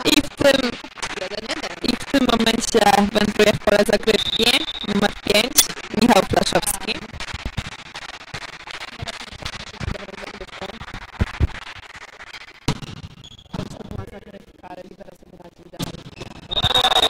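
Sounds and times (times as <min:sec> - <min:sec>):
hand striking volleyball: 0:12.7 - 0:13.8.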